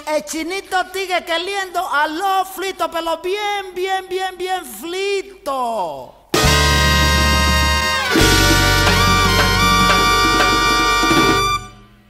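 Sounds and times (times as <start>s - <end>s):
percussion hits: 6.4s - 11.9s
salsa band chord: 6.4s - 12.0s.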